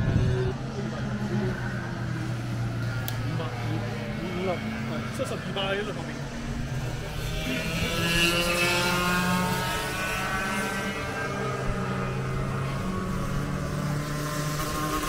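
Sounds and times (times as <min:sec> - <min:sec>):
go-kart engines passing: 0:00.0 - 0:15.0.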